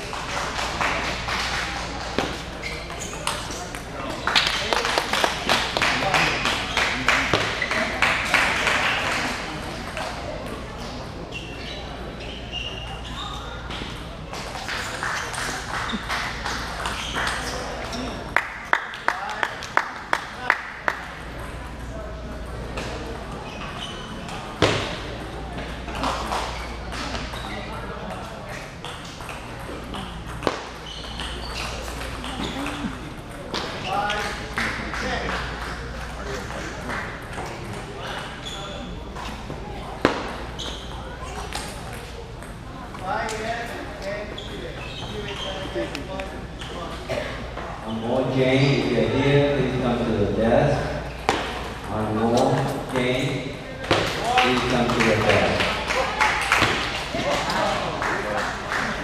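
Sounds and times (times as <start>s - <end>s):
murmur of voices: 0.0s - 59.0s.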